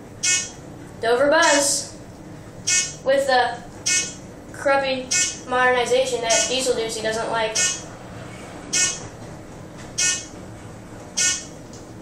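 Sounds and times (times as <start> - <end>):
elevator car hum: 0.0 - 12.0
buzzy electronic beep: 0.2 - 0.6, 2.6 - 3.0, 3.8 - 4.2, 5.1 - 5.5, 6.3 - 6.5, 7.5 - 7.9, 8.7 - 9.1, 10.0 - 10.3, 11.2 - 11.5.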